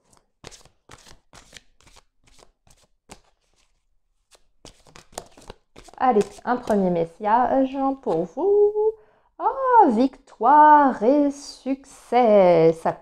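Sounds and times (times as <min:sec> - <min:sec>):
cards being shuffled: 0:00.0 - 0:06.9.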